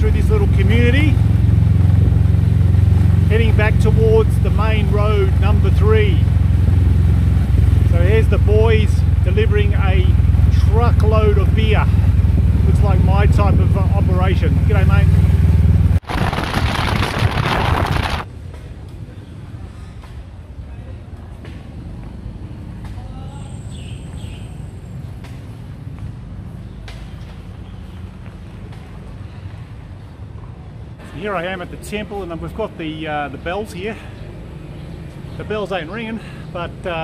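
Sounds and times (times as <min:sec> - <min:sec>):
motorcycle engine running: 0:00.0 - 0:16.7
outdoor background: 0:00.0 - 0:37.0.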